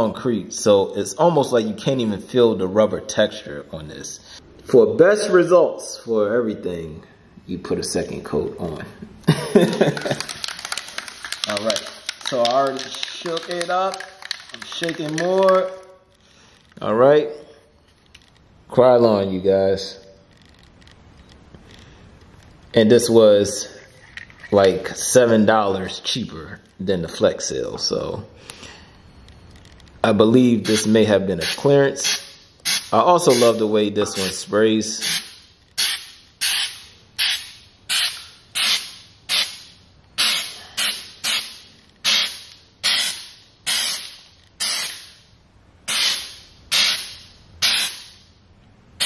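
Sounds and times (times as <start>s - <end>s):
aerosol can handling noise: 9.9s - 15.8s.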